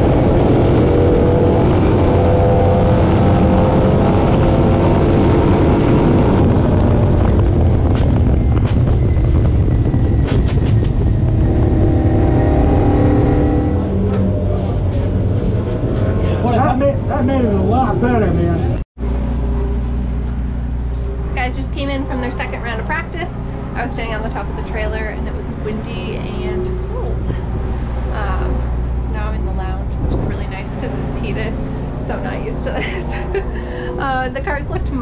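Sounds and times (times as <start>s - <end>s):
race car engine rumble: 0.0s - 35.0s
woman's voice: 21.4s - 27.4s, 28.1s - 35.0s.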